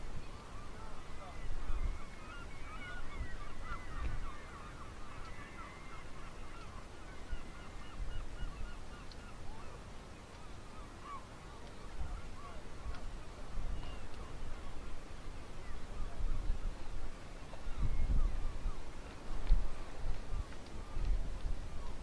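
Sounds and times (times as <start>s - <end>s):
seabirds calling: 0.0s - 22.0s.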